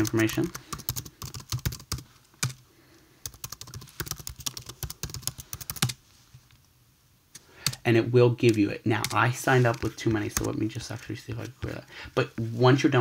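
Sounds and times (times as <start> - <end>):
typing on computer keyboard: 0.0 - 2.6, 3.2 - 6.0.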